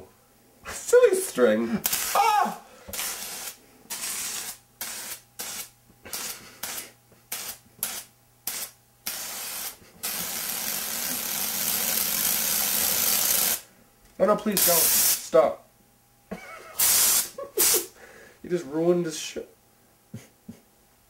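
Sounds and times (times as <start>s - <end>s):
aerosol can spraying: 2.9s - 13.6s, 14.6s - 15.2s, 16.8s - 17.9s.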